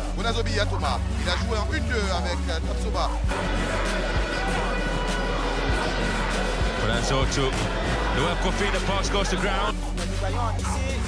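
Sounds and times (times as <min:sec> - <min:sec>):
background music with bass and beat: 0:00.0 - 0:11.0.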